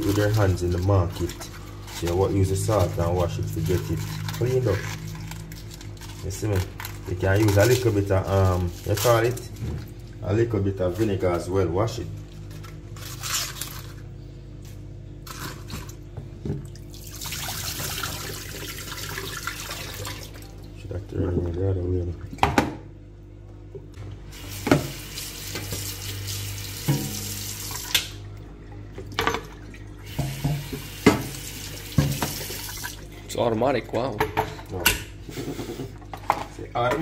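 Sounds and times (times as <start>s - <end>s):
tap water running into sink: 16.5s - 20.4s, 24.3s - 28.2s, 28.9s - 33.0s.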